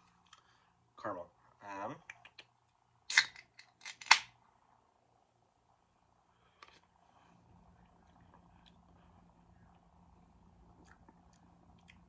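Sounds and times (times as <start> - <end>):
can pull tab crack and hiss: 3.1 - 4.3.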